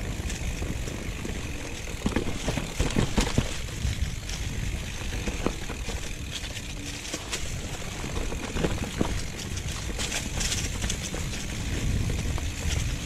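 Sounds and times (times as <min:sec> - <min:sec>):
bike knocks and rattles: 0:00.0 - 0:13.0
bike tyres crunching over leaves: 0:00.0 - 0:13.0
wind rumble on microphone: 0:00.0 - 0:13.0.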